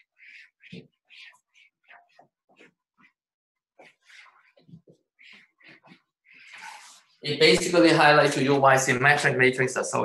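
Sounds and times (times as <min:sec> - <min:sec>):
eraser rubbing whiteboard: 0:00.0 - 0:08.5.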